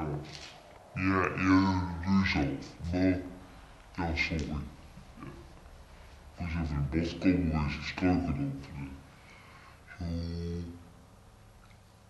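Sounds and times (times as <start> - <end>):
man humming: 1.0 - 3.0, 9.9 - 10.9.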